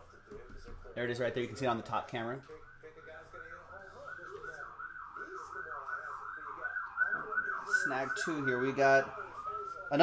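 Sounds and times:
emergency siren yelping: 0.0 - 10.0.

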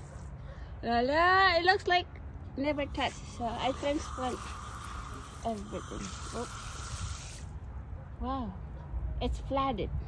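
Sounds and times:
water spraying onto wet soil: 3.4 - 7.5.

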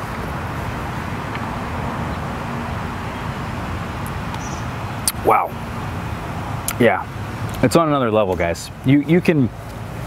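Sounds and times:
distant road traffic: 0.0 - 10.0.

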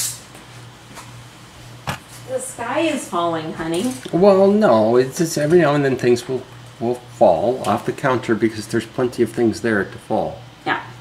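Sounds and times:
object falling knock: 1.8 - 2.1.

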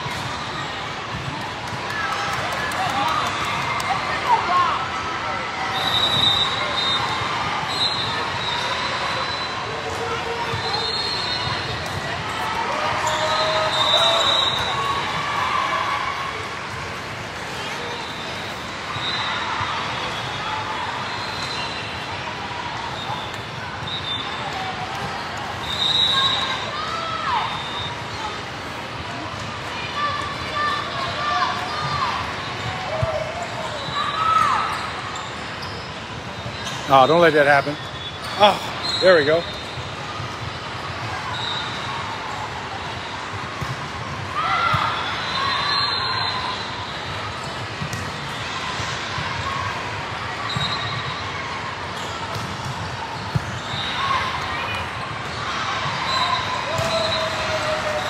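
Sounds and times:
shoes squeaking on court floor: 17.4 - 22.1, 30.5 - 41.9, 50.4 - 51.2.

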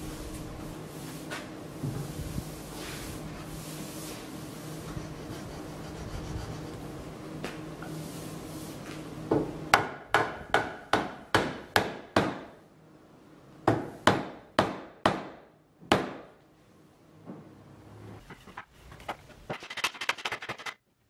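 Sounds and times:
hammer striking wood: 9.4 - 12.5, 13.7 - 16.3.

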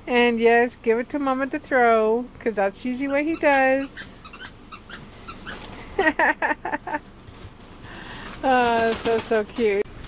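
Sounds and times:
squeaky toy squeaks: 3.0 - 5.7.

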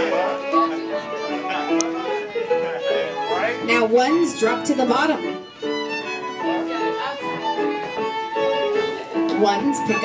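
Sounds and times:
fiddle playing a dance tune: 0.0 - 10.0.

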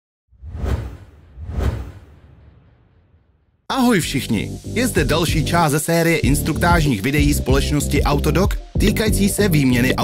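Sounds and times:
whooshes: 0.3 - 3.6.

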